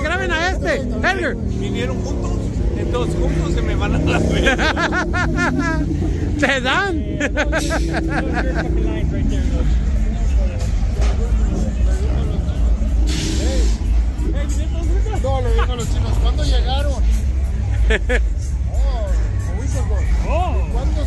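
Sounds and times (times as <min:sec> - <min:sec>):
people talking and laughing: 0:00.0 - 0:21.0
traffic engines rumbling: 0:00.0 - 0:21.0.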